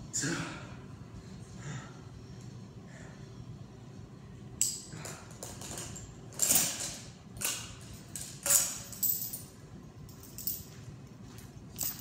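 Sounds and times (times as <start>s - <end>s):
metal chain rattling and clinking: 4.6s - 12.0s.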